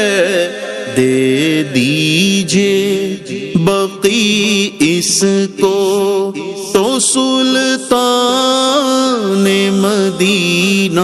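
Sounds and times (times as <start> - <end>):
man singing unaccompanied: 0.0 - 11.0.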